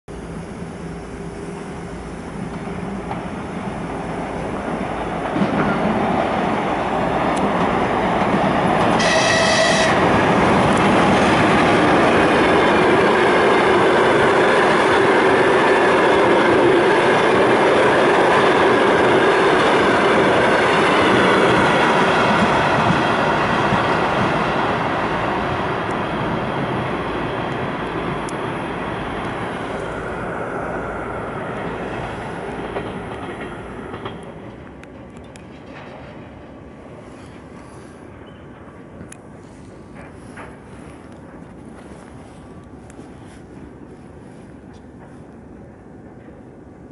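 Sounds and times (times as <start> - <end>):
train passing on rails: 0.1 - 46.9
train horn blast: 8.9 - 10.2.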